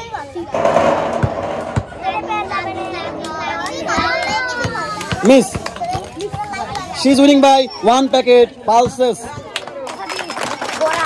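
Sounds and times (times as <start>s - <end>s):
crowd voices with children: 0.0s - 11.0s
ball rolling down tin sheet: 0.4s - 5.2s.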